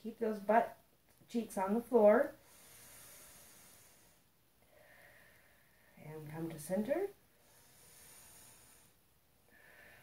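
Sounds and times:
faint breath: 0:02.4 - 0:06.0, 0:07.3 - 0:10.0.

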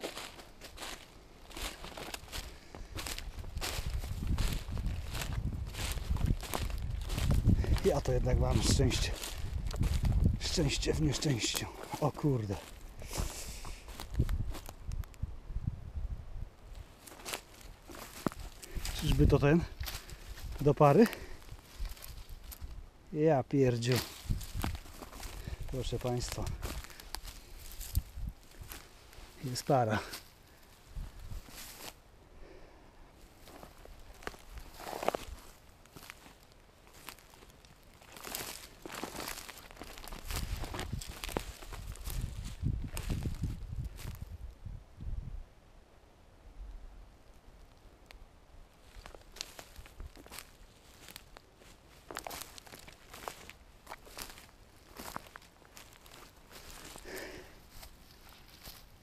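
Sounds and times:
dry grass and leaves rustling: 0:00.0 - 0:45.3, 0:45.9 - 0:59.0.

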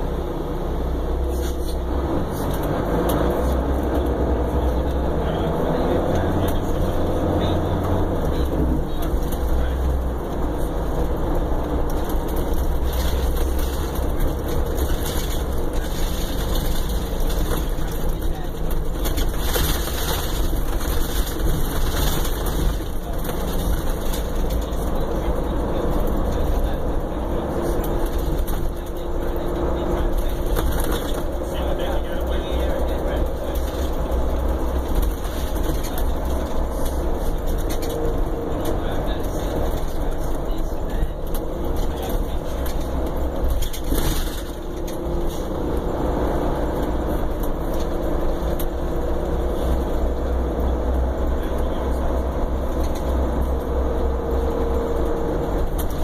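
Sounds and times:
bus engine drone: 0:00.0 - 0:56.0
road noise: 0:00.0 - 0:56.0
rattles and clicks from bus body: 0:01.0 - 0:56.0.

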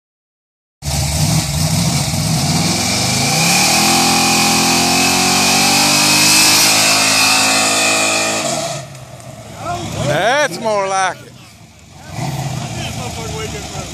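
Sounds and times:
car engine revving: 0:00.8 - 0:13.9.

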